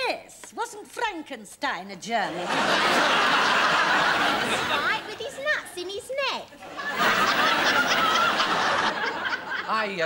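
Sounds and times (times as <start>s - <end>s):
studio audience laughing: 2.3s - 5.4s, 6.6s - 10.0s.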